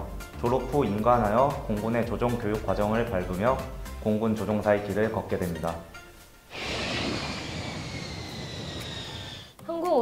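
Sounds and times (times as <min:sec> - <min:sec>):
jet plane flying by: 0:06.5 - 0:09.6.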